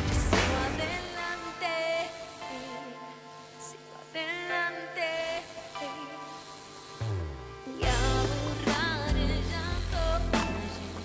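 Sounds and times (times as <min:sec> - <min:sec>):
woman singing: 0:00.0 - 0:06.5, 0:07.6 - 0:11.0
sustained keyboard chords: 0:05.9 - 0:11.0.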